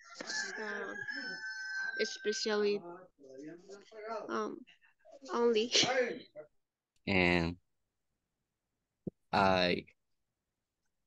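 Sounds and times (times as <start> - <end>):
rooster crowing: 0.0 - 2.7.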